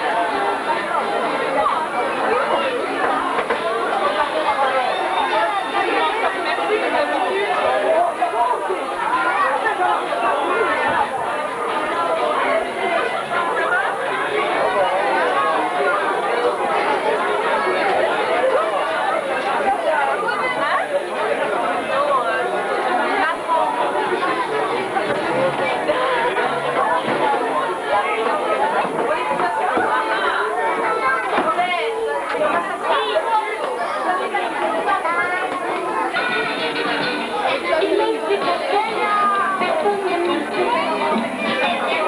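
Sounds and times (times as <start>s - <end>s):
crowd chatter: 0.0s - 42.0s.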